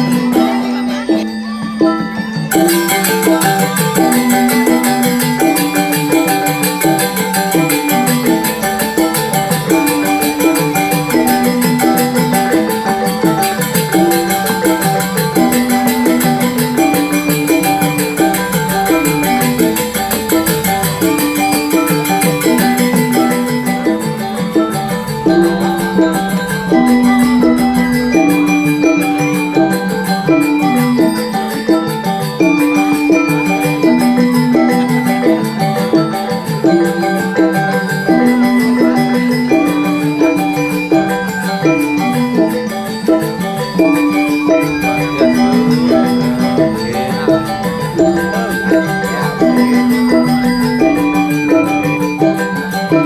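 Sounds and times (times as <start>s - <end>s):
gamelan metallophones: 0.0s - 53.0s
high percussion shimmer: 0.0s - 53.0s.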